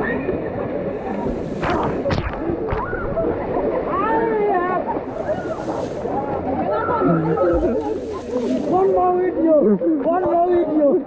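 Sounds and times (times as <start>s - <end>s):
splashing in pool water: 0.0s - 9.3s.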